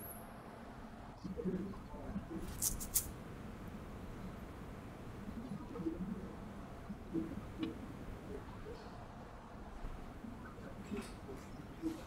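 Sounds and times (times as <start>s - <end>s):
short high rustles: 2.5s - 3.1s.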